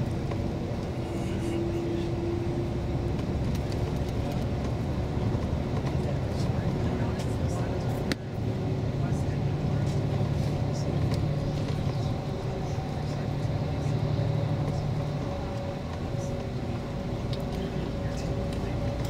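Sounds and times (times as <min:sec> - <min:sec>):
bus engine and tyre drone: 0:00.0 - 0:19.0.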